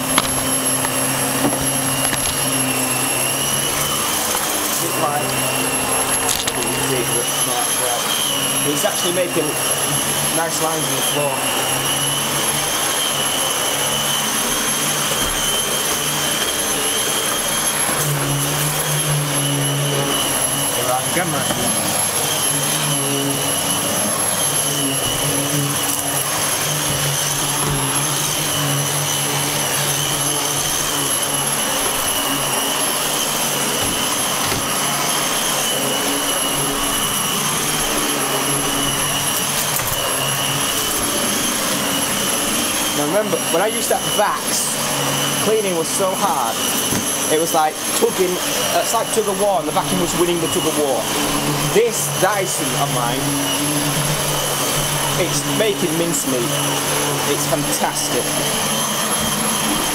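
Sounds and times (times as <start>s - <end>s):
upright vacuum cleaner running: 0.0s - 59.9s.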